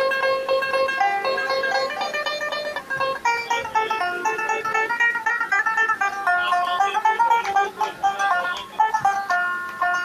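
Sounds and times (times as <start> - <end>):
plucked lute melody: 0.0 - 10.0.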